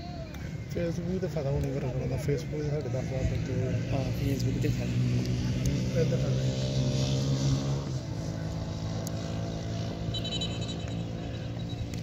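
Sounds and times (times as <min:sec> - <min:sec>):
engine running: 0:01.6 - 0:12.0.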